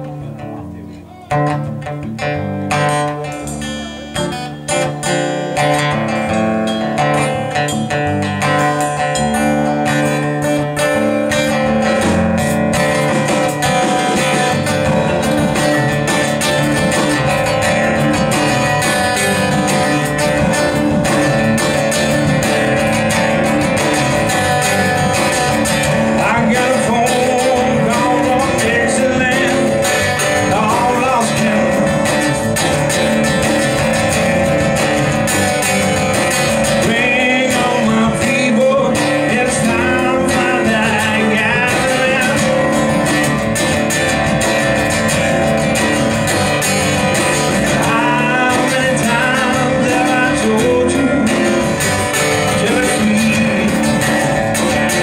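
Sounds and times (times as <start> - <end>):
live blues band with guitars: 0.0 - 55.0
sliding high guitar notes: 0.0 - 55.0.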